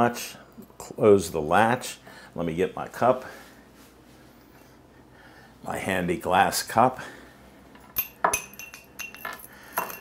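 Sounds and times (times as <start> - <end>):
metal tea ball clinking on glass: 7.8 - 10.0.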